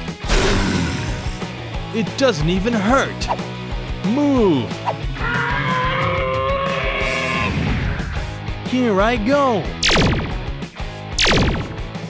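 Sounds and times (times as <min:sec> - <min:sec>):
background music: 0:00.0 - 0:12.0
cartoon laser zaps: 0:09.8 - 0:10.3, 0:11.2 - 0:11.8.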